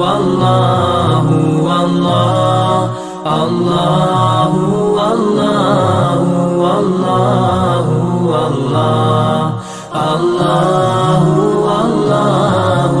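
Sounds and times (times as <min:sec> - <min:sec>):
voices chanting: 0:00.0 - 0:13.0.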